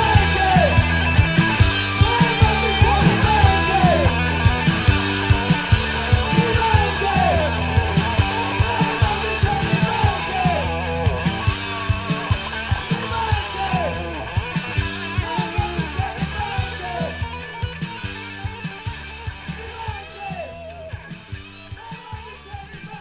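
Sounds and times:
electric guitar lead bending notes: 0.0s - 21.8s
hard rock band playing: 0.0s - 23.0s.

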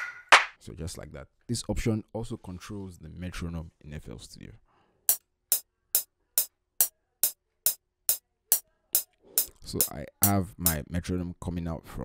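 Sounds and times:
metronome ticking: 8.5s - 10.8s.

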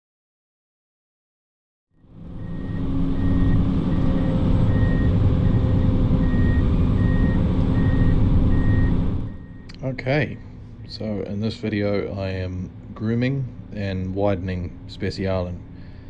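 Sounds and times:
diesel engine running: 2.0s - 16.0s
alarm beeping: 2.4s - 11.0s.

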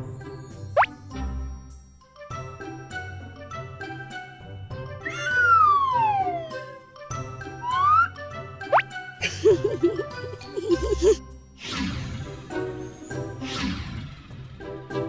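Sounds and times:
playful cartoon music: 0.0s - 15.0s
cartoon falling glide: 5.0s - 6.8s, 7.6s - 8.9s
cartoon rising glide: 5.0s - 6.8s, 7.6s - 8.1s
cartoon upward swoop: 5.0s - 6.8s, 7.6s - 8.1s.

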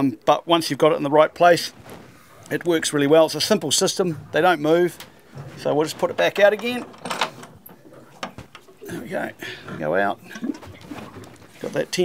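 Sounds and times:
metal base clicks and knocks: 5.0s - 8.8s.

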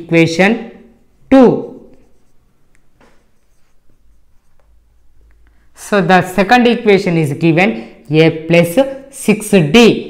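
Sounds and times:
marker pen writing on whiteboard: 0.0s - 6.7s.

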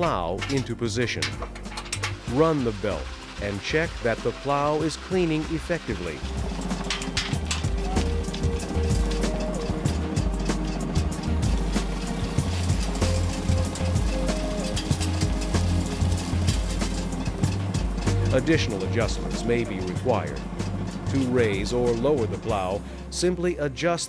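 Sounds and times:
stepping bass line: 0.0s - 22.8s
light percussion: 0.0s - 23.3s
held synth chords: 0.0s - 23.5s.

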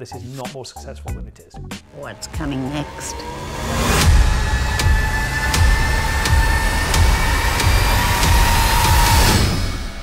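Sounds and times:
high drone: 1.9s - 10.0s.

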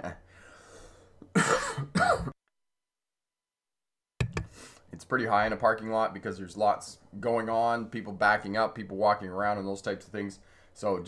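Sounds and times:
man coughing: 1.3s - 2.4s.

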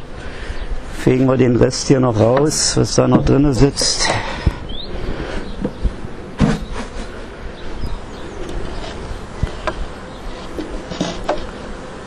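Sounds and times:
honeybee swarm buzzing: 0.0s - 12.0s
wind rumble on microphone: 2.5s - 11.5s
knocks on swarm box: 5.6s - 6.8s.

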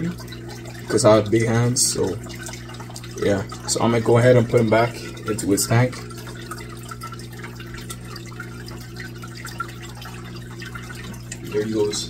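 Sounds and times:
filter low hum: 0.0s - 12.0s
water trickling and dripping: 0.0s - 12.0s.

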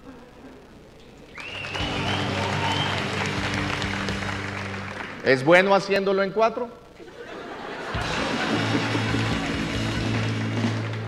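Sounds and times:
audience applause: 1.3s - 5.7s, 7.8s - 11.0s.

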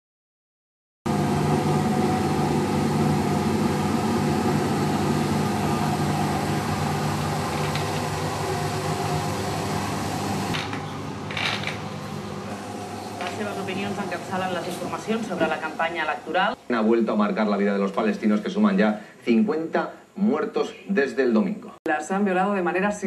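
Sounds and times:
washing machine running: 1.1s - 16.6s.

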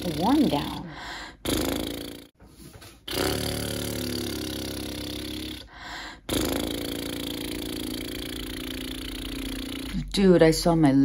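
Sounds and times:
lip buzzing low tones: 0.0s - 2.4s, 3.0s - 10.5s.

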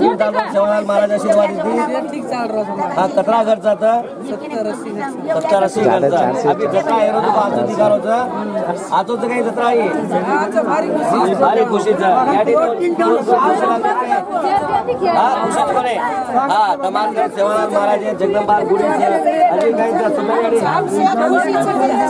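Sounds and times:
overlapping group chatter: 0.0s - 22.0s.

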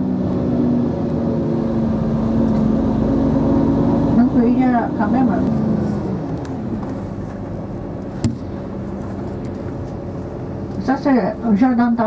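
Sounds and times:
vehicle engine and road noise: 0.0s - 12.0s.

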